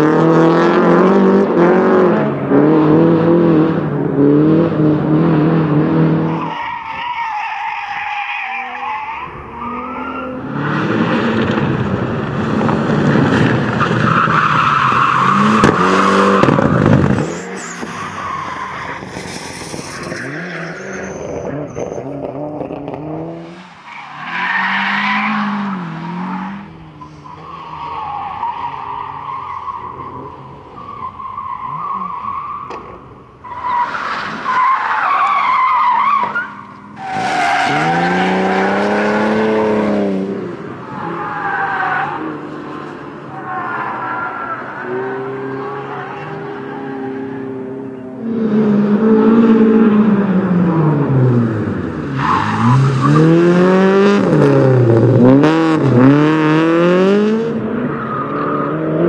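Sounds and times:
rally car engines revving: 0:00.0 - 0:59.0
tyres skidding: 0:00.0 - 0:59.0.

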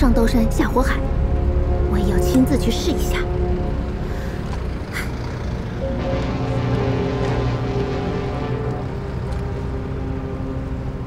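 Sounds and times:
ship engine rumble: 0:00.0 - 0:11.0.

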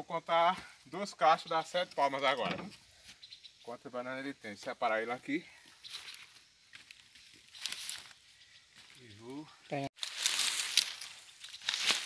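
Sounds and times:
leaves rustling: 0:05.4 - 0:12.0.

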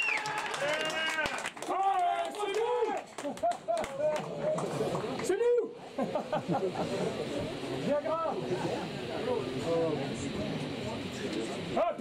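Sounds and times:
audience chatter: 0:04.0 - 0:12.0.

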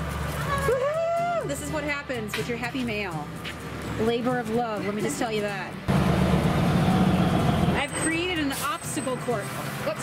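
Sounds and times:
vehicle engine idling: 0:00.0 - 0:09.6.

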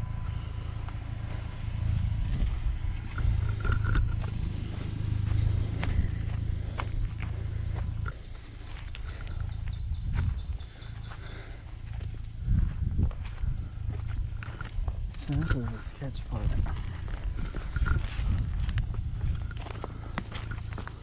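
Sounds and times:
footsteps on rocky dirt trail: 0:00.0 - 0:21.0
low even rumble: 0:00.0 - 0:21.0.

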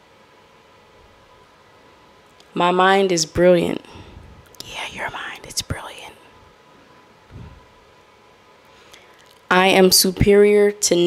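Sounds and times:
woman speaking softly: 0:04.6 - 0:06.3, 0:09.5 - 0:11.0.

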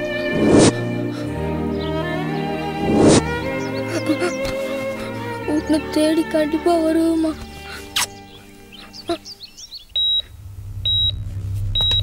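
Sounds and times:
low hum: 0:00.0 - 0:04.0, 0:09.3 - 0:12.0
faint chirps: 0:08.0 - 0:11.2
short high-pitched electronic beeps: 0:10.0 - 0:10.2.

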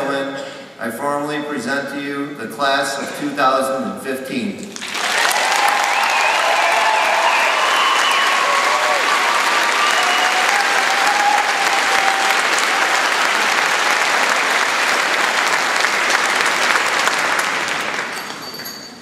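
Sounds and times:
audience applauding: 0:04.7 - 0:18.9
people shouting: 0:05.4 - 0:13.2.

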